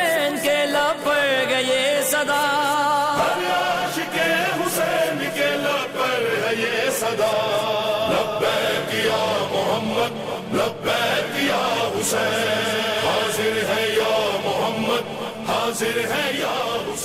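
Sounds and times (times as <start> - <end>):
voices chanting long notes: 3.2 - 17.0.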